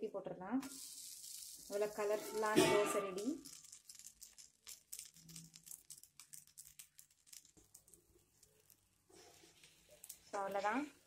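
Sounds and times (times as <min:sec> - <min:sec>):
faint crackling sizzle: 0:00.1 - 0:11.0.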